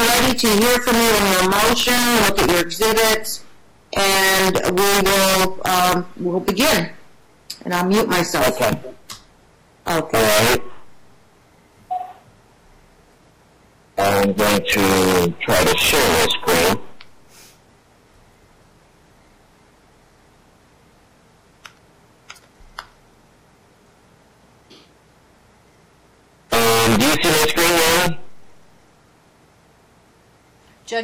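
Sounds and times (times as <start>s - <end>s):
man speaking: 0.0s - 9.1s, 9.9s - 10.9s, 14.0s - 17.0s, 26.5s - 28.3s
faint background hiss: 0.0s - 31.0s
short beep: 11.9s - 12.2s
call line hiss: 14.4s - 17.6s.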